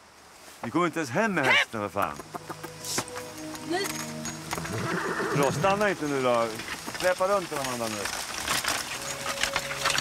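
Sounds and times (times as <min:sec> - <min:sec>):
harrow clicking and rattling: 0:03.2 - 0:10.0.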